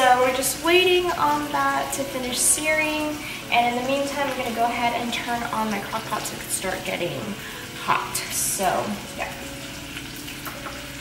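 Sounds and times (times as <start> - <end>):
chicken sizzling in a skillet: 5.4 - 11.0.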